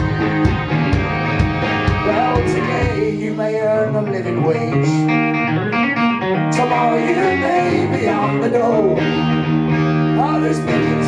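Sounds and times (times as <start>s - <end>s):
live rock band instrumental: 0.0s - 11.0s.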